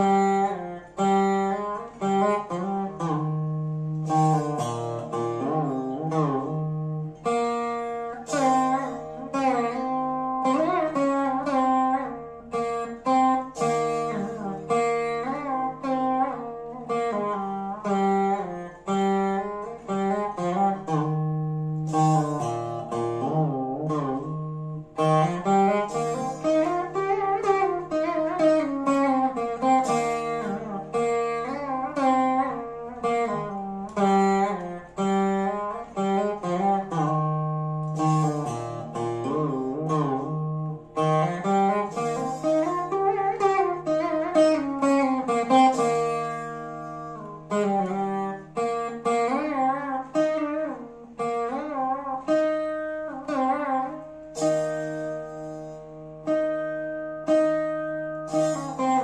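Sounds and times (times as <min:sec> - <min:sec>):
veena plucked notes: 0:00.0 - 0:59.0.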